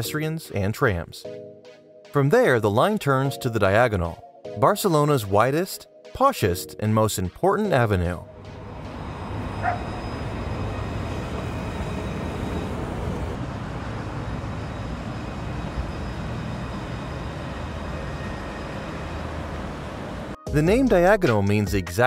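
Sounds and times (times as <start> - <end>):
tram passing with hum and rumble: 8.2 - 20.4
street noise: 8.4 - 20.4.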